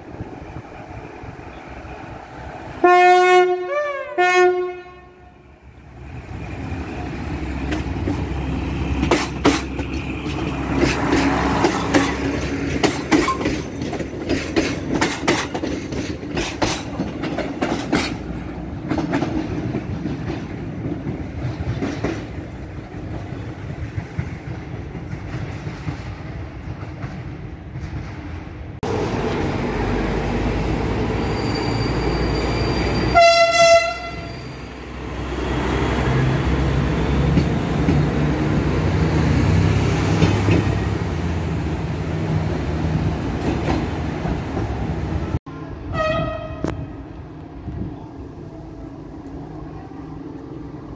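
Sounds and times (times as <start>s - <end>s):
train horn: 2.8s - 5.4s, 33.0s - 34.4s, 45.7s - 47.0s
train wheels clattering over rail joints: 7.5s - 28.5s.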